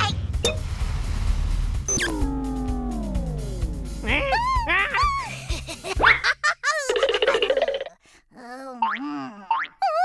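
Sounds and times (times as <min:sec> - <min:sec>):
background music: 0:00.0 - 0:06.4
descending tone sound effect: 0:00.4 - 0:04.8.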